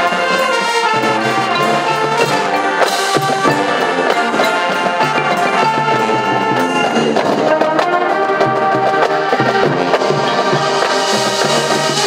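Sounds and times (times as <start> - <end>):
brass chords: 0.0 - 12.0
drumline striking: 0.0 - 12.0.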